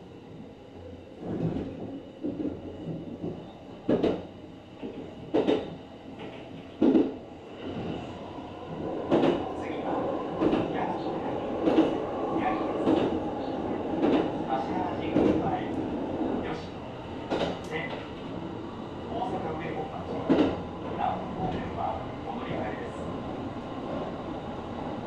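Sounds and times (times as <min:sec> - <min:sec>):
train rolling rumble: 0:00.0 - 0:25.0.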